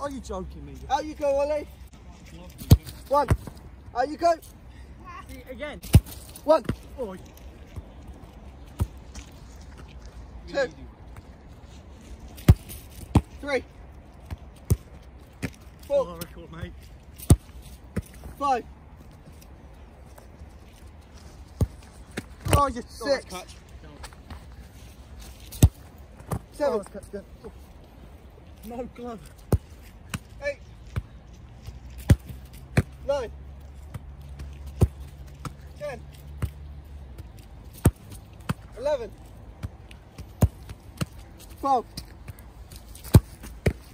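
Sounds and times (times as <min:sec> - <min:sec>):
football thudding: 0:05.8 - 0:06.8, 0:37.8 - 0:38.7, 0:42.0 - 0:43.9
football thuds: 0:05.8 - 0:06.9, 0:21.5 - 0:22.8, 0:25.5 - 0:26.9, 0:37.2 - 0:43.9.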